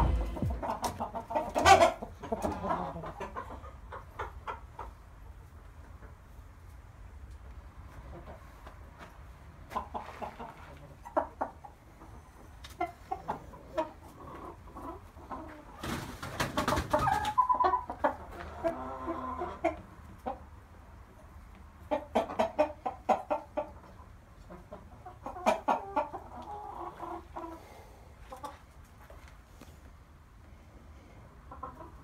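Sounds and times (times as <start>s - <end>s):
chicken clucking: 0.0s - 29.5s, 31.3s - 32.0s.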